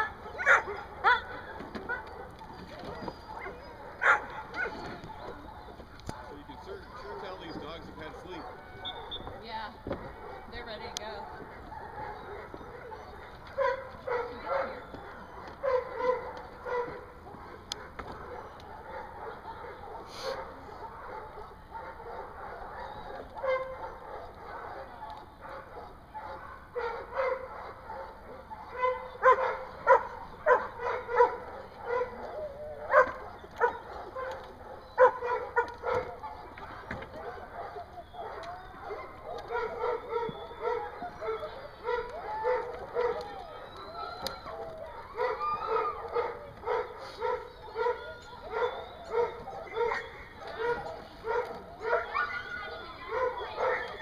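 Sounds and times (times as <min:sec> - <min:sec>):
dog barking: 0:00.0 - 0:54.0.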